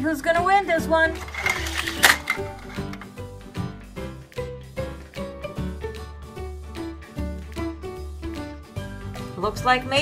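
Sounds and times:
sharp click: 1.3 - 3.1.

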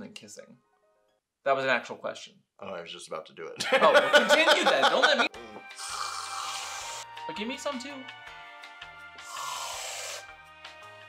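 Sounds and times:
background music with steady beat: 3.6 - 11.0
aerosol can hissing: 5.7 - 7.0, 9.2 - 10.3.

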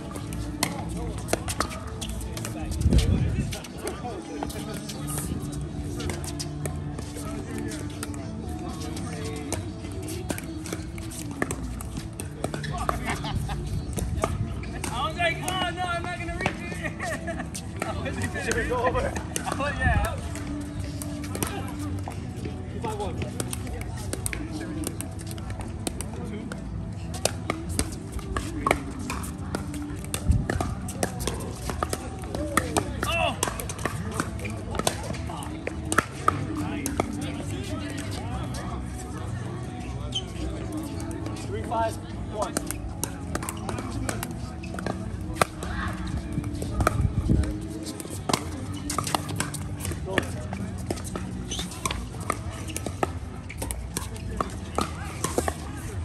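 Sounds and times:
background music: 0.0 - 56.0.

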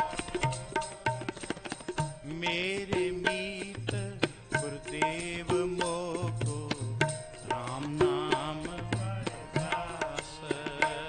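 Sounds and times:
harmonium chords: 0.0 - 11.0
tabla beat: 0.0 - 11.0.

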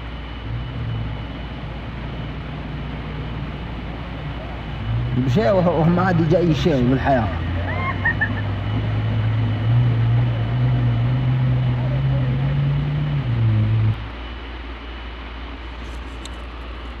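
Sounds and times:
vehicle engine droning: 0.0 - 17.0.

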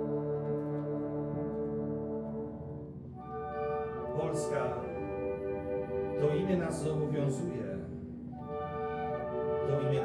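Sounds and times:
wind band sustained brass chord: 0.0 - 10.0.

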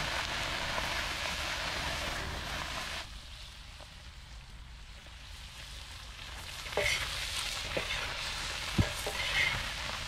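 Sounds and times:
shrimp sizzling in a pan: 0.0 - 3.4, 5.3 - 10.0.

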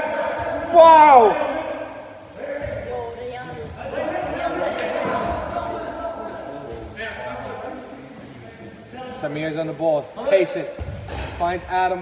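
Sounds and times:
players calling indoors: 0.0 - 8.1.

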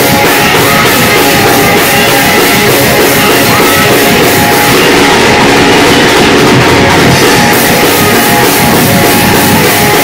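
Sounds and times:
distorted live praise music: 0.0 - 10.0.

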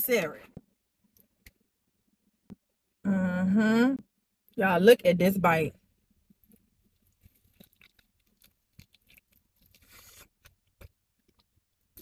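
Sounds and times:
faint chewing: 6.2 - 12.0.

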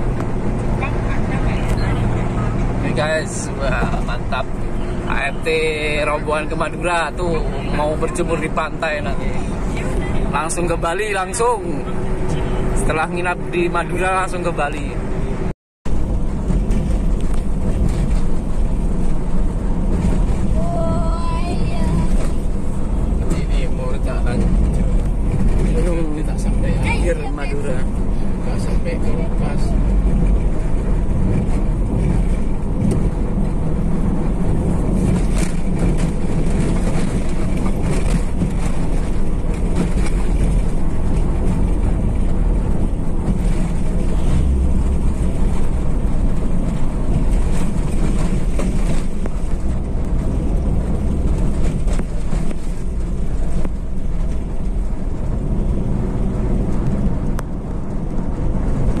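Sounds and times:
car engine and road rumble: 0.0 - 59.0.

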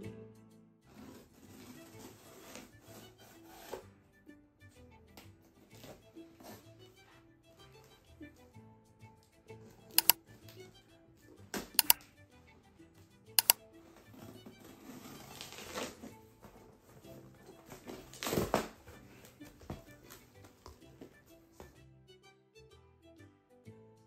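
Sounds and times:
soft background music: 0.0 - 24.0
packing tape snapping: 15.1 - 16.0, 17.8 - 18.8.

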